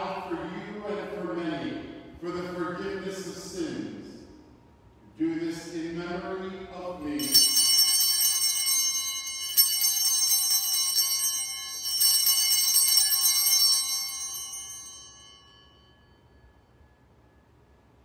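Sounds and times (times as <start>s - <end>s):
altar bells ringing: 7.2s - 17.5s.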